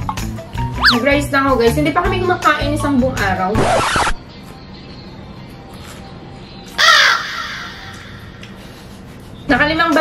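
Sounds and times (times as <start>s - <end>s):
faint background music: 0.0s - 10.0s
crow cawing: 6.8s - 8.3s.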